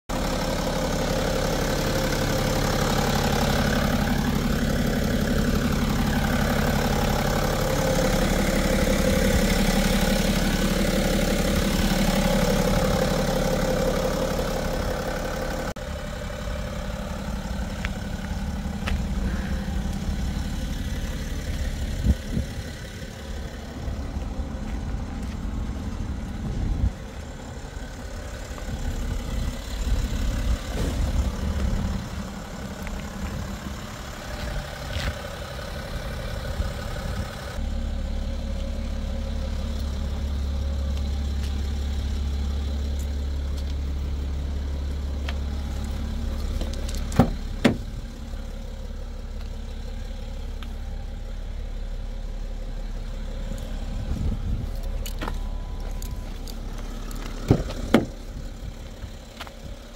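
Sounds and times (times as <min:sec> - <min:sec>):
diesel engine idling: 0:00.1 - 0:59.9.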